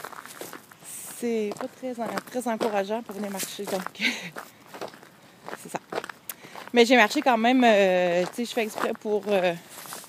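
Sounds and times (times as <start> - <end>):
footsteps in snow: 0.0 - 10.0.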